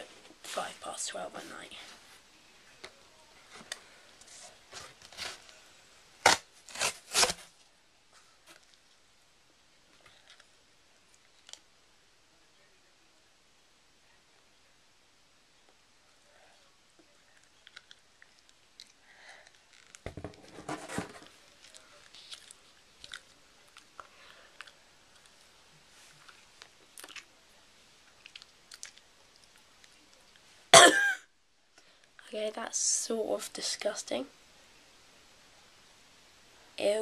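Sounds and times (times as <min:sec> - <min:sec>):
cardboard ripping: 0:06.2 - 0:07.5
cardboard crackling: 0:06.2 - 0:07.6
cardboard being chewed: 0:17.2 - 0:20.0, 0:20.6 - 0:25.4.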